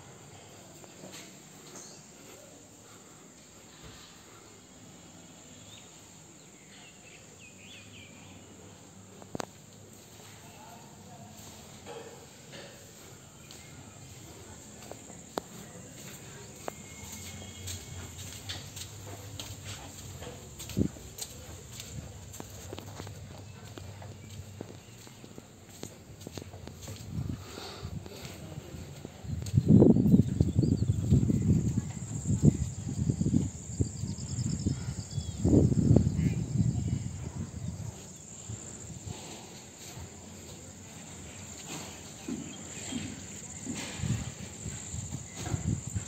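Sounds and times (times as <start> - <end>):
crickets chirping: 0.0 - 46.0
footsteps on concrete stairs: 12.8 - 30.4.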